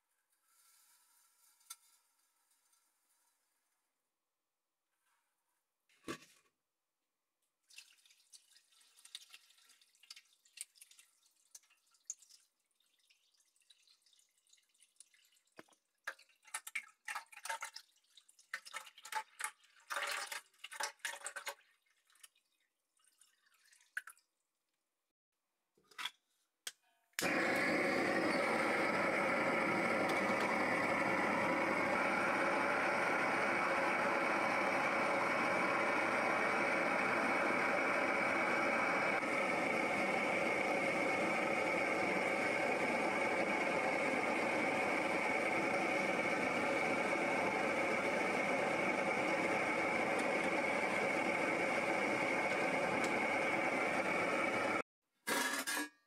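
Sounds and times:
gas torch burner running: 27.2 - 54.8.

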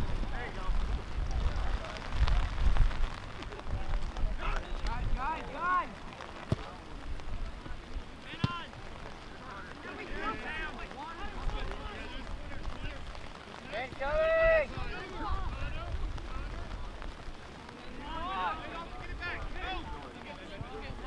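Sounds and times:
wind rumble on microphone: 0.0 - 5.6, 14.0 - 17.4.

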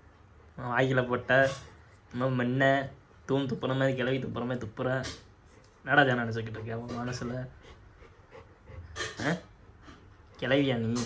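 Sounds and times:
dog panting softly: 5.2 - 10.8.

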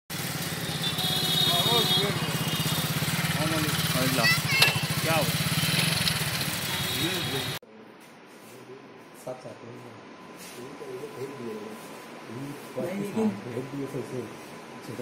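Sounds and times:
vehicle engine running: 0.1 - 7.6.

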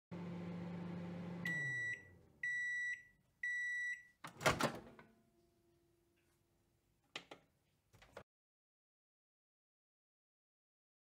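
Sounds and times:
microwave oven humming: 0.1 - 3.6.

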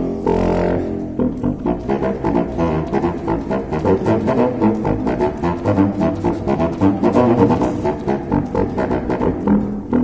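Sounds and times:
contrabassoon playing low notes: 0.0 - 10.0.

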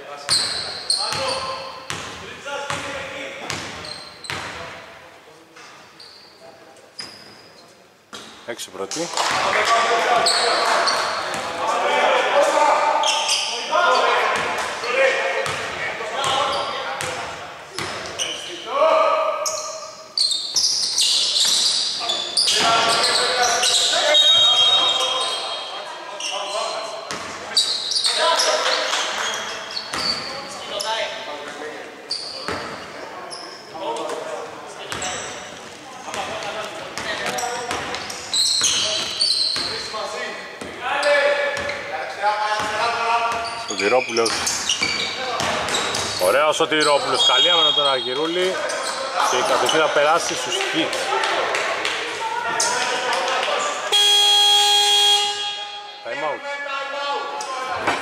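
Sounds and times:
echoing voices in a hall: 0.0 - 58.0.

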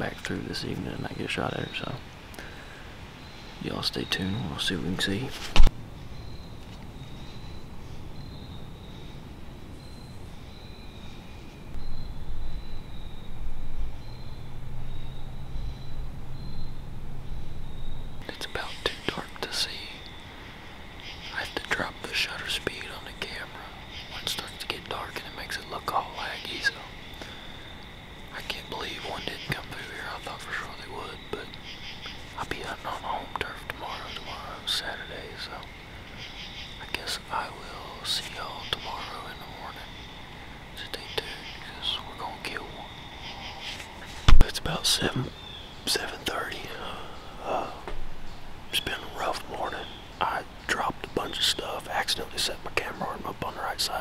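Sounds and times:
man whispering: 0.0 - 2.6, 3.6 - 5.6, 18.2 - 20.2, 21.2 - 27.4, 28.3 - 35.8, 36.8 - 40.0, 40.8 - 48.0, 48.7 - 54.0
low rumble: 11.8 - 18.3
high-pitched insect drone: 11.8 - 45.3.

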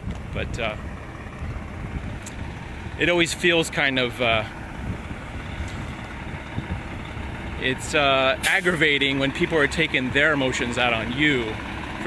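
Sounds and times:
wind on microphone: 0.0 - 3.0, 4.2 - 7.6
low rumble of outdoor noise: 0.0 - 12.0.

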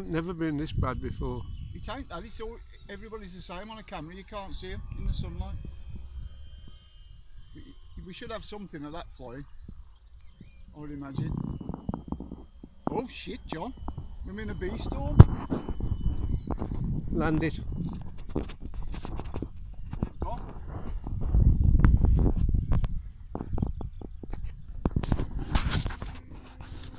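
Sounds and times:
faint steady high whine: 0.0 - 26.9
wind rumble on microphone: 0.0 - 26.9.

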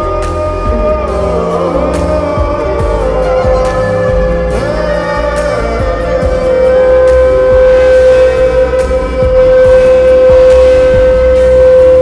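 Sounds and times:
slow reverbed ballad: 0.0 - 12.0.

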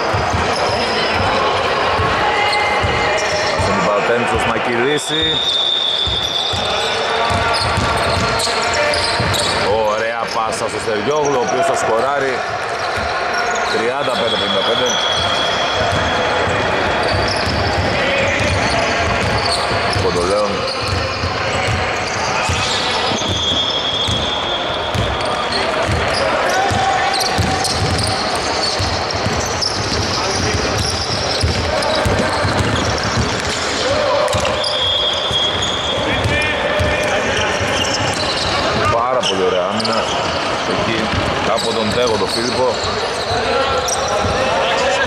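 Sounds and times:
players' voices echoing: 0.0 - 45.0
basketball bouncing on hardwood: 28.8 - 33.6.

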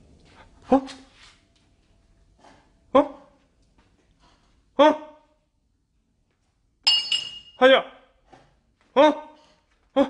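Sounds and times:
ceramic cups and bowls clinking: 6.9 - 7.6.

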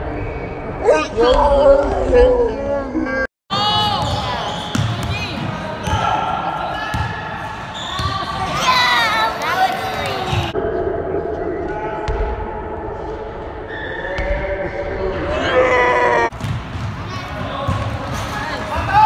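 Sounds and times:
players' voices echoing: 0.8 - 19.0
basketball bouncing on wooden floor: 16.4 - 17.0.

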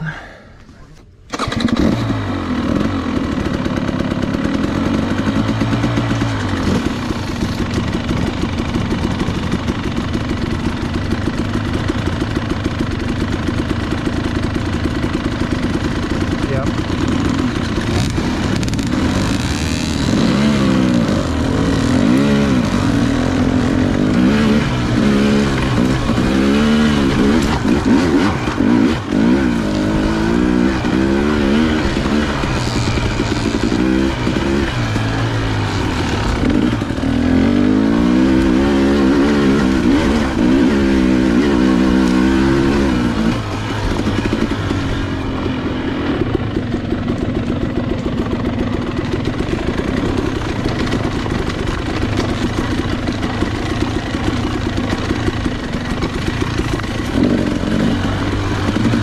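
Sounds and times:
dirt bike engine idling and revving: 0.0 - 59.0.

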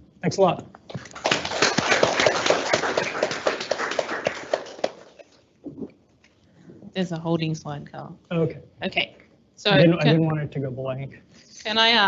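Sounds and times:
audience applauding: 0.9 - 5.3.

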